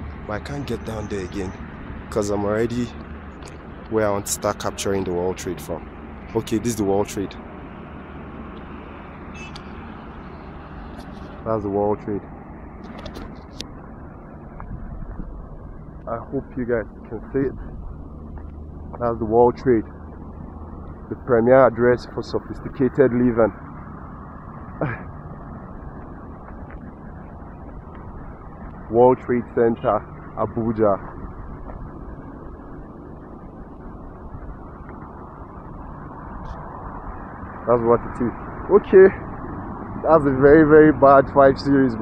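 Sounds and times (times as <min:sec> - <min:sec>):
car driving along road: 0:00.0 - 0:42.0
short high-pitched squeak: 0:09.3 - 0:09.7.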